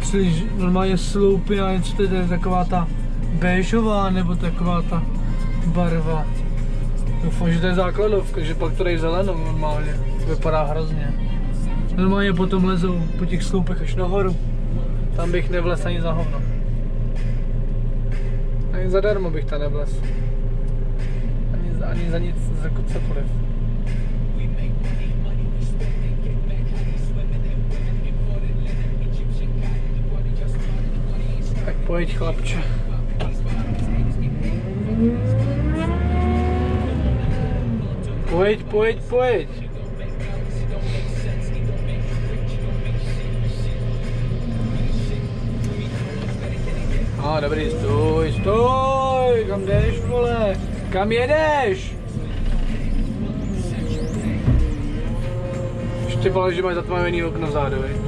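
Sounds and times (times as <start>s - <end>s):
diesel engine running and revving: 0.0s - 58.0s.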